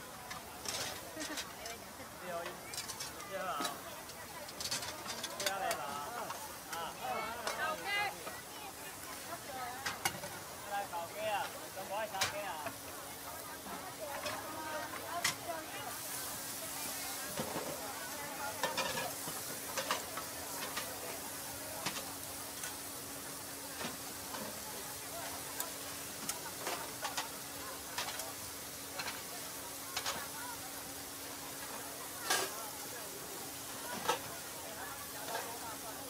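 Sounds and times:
meat sizzling on a griddle: 0.0s - 36.0s.

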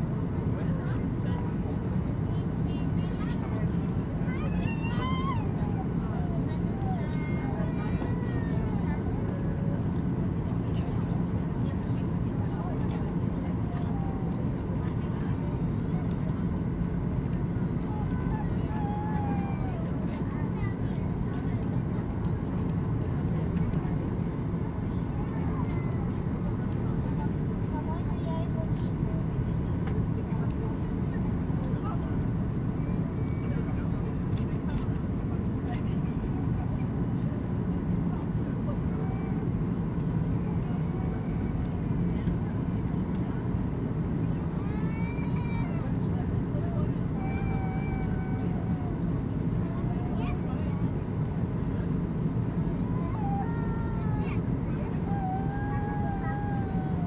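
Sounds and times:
airplane cabin drone: 0.0s - 57.0s
faint passenger voices: 0.0s - 57.0s.

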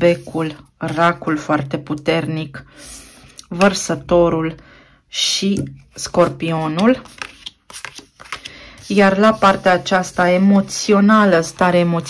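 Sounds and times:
cards clicking and rustling: 6.7s - 8.7s.

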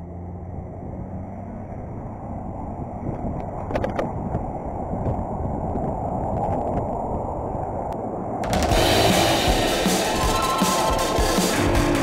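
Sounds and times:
vehicle engine hum: 0.0s - 10.3s
bike tyres rolling on asphalt: 1.0s - 8.1s
wind buffeting microphone: 1.8s - 8.4s.

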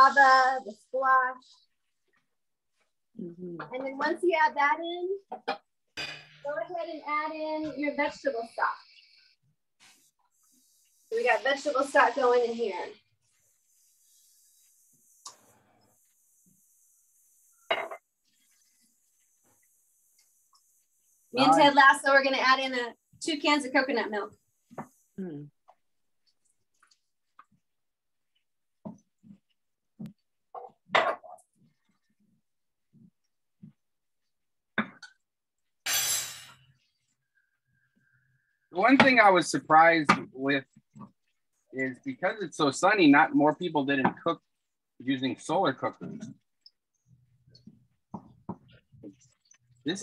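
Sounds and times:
kitchenware knocking: 17.7s - 18.0s.

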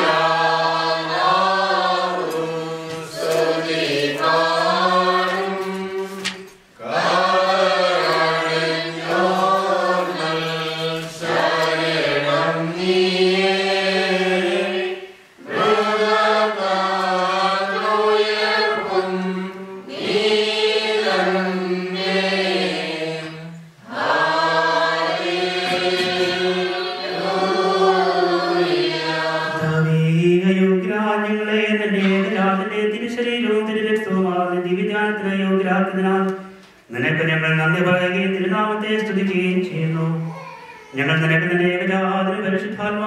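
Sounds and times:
voices chanting a hymn: 0.0s - 43.0s.

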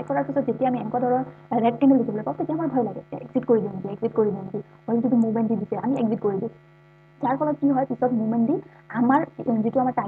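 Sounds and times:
person speaking: 0.0s - 6.6s, 7.2s - 10.0s
low electrical hum: 0.0s - 10.0s.

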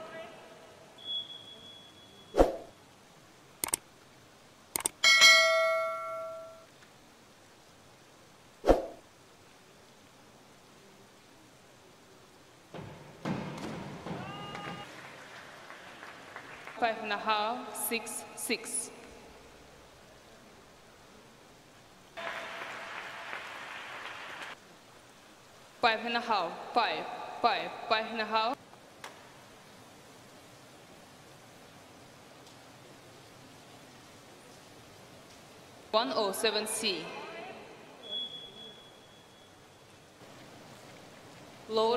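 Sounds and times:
click: 3.6s - 3.8s, 4.8s - 5.0s
bright bell ding: 5.0s - 6.7s
audience applause: 14.1s - 17.1s, 22.2s - 24.6s.

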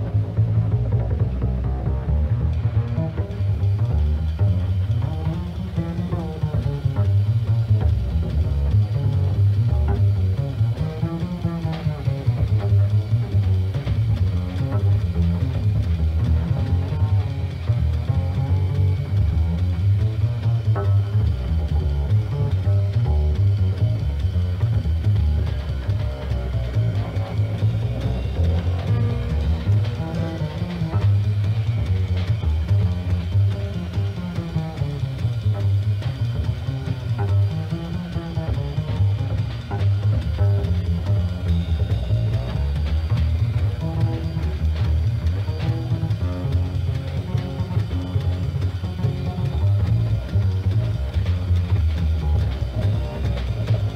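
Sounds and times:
drum kit with cymbals: 0.0s - 53.9s
plucked upright double bass: 0.0s - 53.9s.

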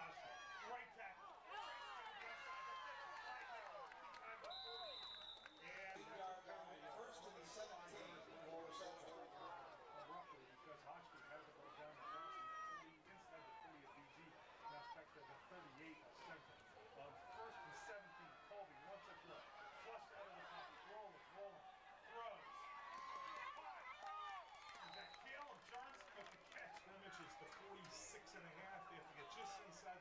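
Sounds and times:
crowd chatter and calls: 0.0s - 30.0s.

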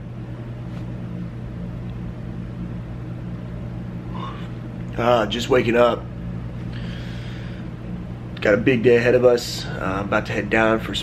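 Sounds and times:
low room hum: 0.0s - 11.0s
soft sleepy exhale: 6.7s - 7.7s.

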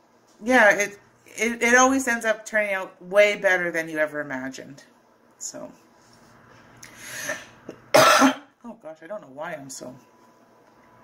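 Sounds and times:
breathy intake of air: 6.8s - 7.6s
woman coughing: 7.7s - 8.5s.

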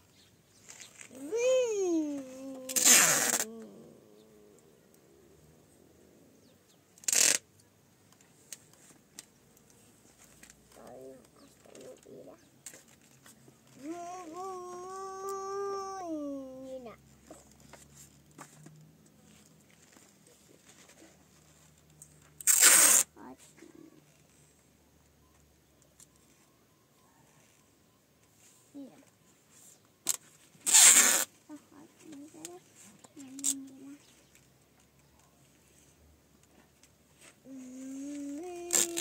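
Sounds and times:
high voice holding a note: 1.1s - 3.9s, 13.8s - 16.8s
adhesive tape ripping: 2.1s - 3.9s, 7.0s - 7.4s, 22.4s - 23.1s, 30.0s - 31.3s, 38.2s - 39.0s.

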